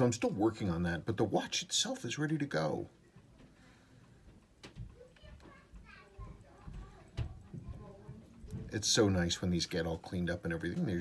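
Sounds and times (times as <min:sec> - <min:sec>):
faint background voices: 0:02.9 - 0:11.0.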